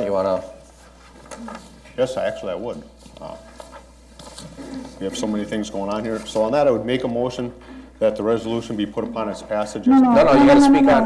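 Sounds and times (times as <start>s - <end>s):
man saying uh: 9.7s - 11.0s.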